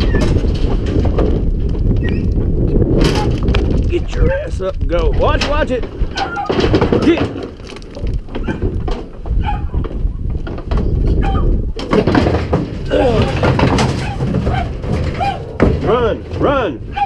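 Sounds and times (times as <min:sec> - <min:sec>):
bangs and thuds in metal trailer: 0:00.0 - 0:02.0, 0:05.2 - 0:07.6, 0:10.4 - 0:17.0.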